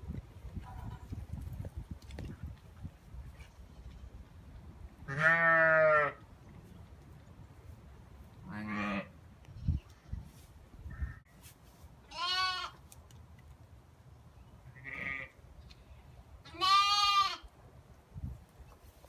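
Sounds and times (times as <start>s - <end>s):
lambs and sheep bleating: 5.1s - 6.2s, 8.5s - 9.1s, 12.1s - 12.8s, 14.8s - 15.3s, 16.5s - 17.5s.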